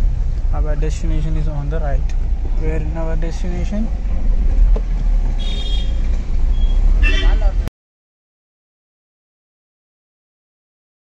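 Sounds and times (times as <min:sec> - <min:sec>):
car engine rumble: 0:00.0 - 0:07.7
road noise inside car: 0:00.0 - 0:07.7.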